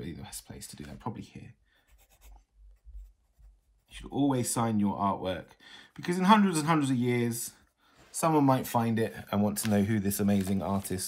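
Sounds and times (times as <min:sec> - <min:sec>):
pencil scratching on paper: 0:01.8 - 0:04.2.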